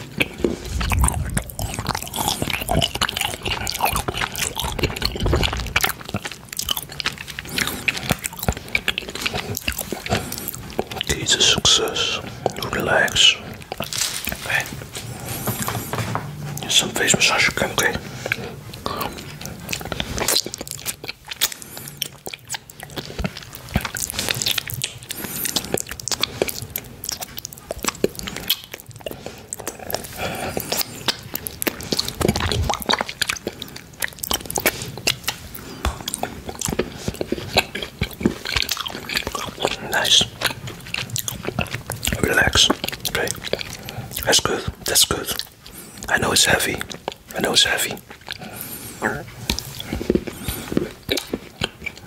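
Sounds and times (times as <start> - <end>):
chewing chocolate with clicks: 0.0 - 52.0
wet mouth sounds: 0.0 - 52.0.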